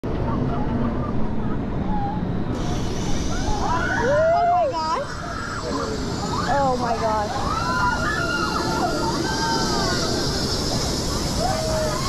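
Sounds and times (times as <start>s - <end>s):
thin hiss: 2.6s - 4.3s.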